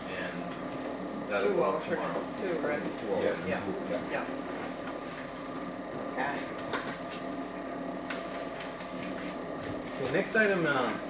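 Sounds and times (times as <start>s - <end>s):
steady room hum: 0.0s - 11.0s.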